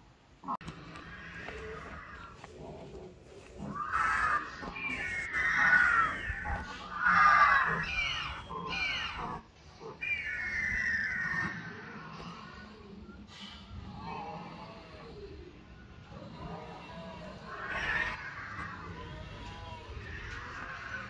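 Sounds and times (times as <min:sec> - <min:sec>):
animal screeches over loudspeaker: 0:03.6 - 0:12.9, 0:16.3 - 0:21.0.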